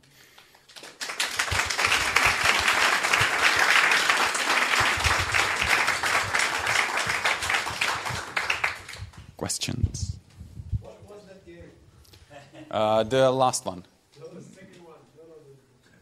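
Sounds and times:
audience applauding: 0.4 - 9.3.

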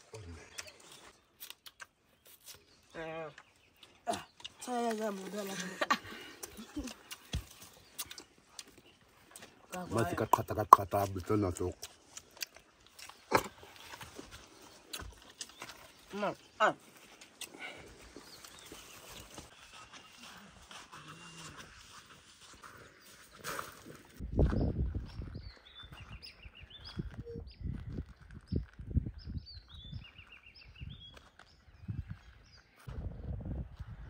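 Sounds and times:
birds chirping: 0.0 - 32.9.

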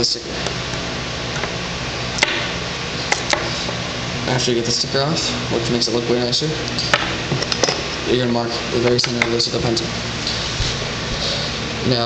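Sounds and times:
steady hiss and low hum: 0.0 - 12.0.

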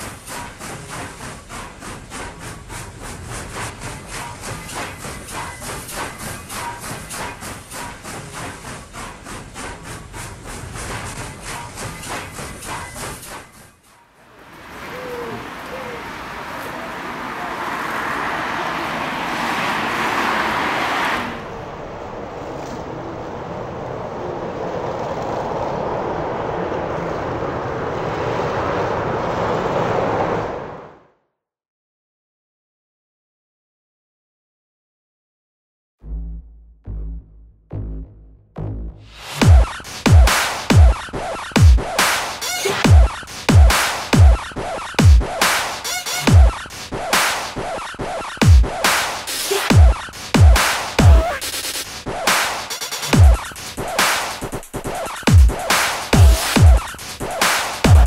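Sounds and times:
outdoor street noise: 0.0 - 31.2, 36.1 - 58.0.

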